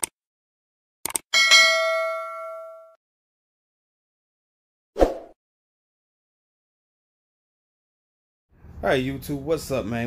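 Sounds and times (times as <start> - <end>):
notification bell ding: 1.4 - 3.0.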